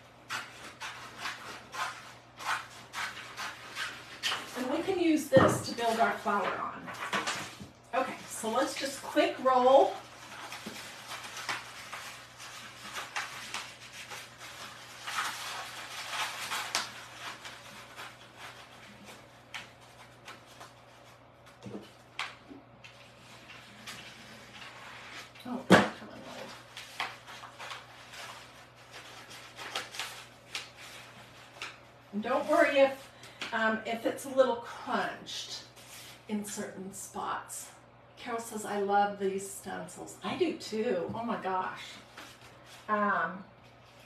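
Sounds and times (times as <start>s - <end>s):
paper rustling and crinkling: 0.2s - 33.4s, 41.7s - 43.0s.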